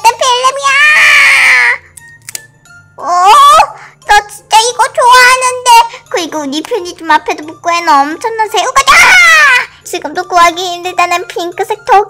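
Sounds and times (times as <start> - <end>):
cartoon voice exclamation: 3.0 - 3.8, 8.8 - 9.6.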